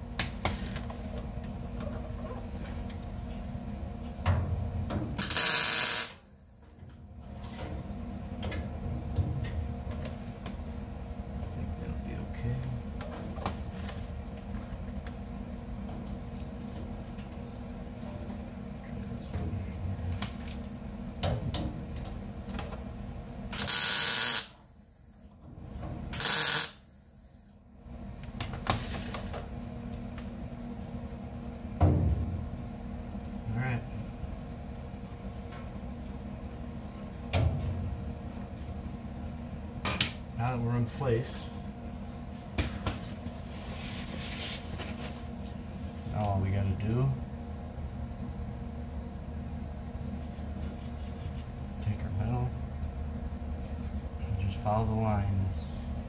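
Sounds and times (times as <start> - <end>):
steady shop hum: 0.0 - 56.0
welding arc crackle: 5.2 - 6.2, 23.5 - 24.6, 26.1 - 26.8.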